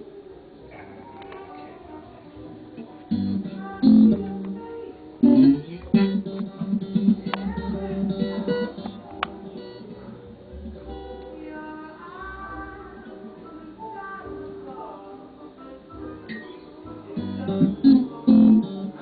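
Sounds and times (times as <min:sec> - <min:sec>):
electric guitar notes: 0:02.3 - 0:13.8, 0:16.2 - 0:19.0.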